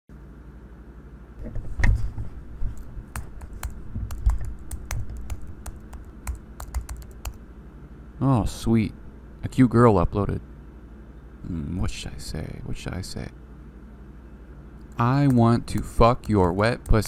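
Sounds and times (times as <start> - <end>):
laptop keyboard typing: 2.6 - 7.4, 14.9 - 17.0.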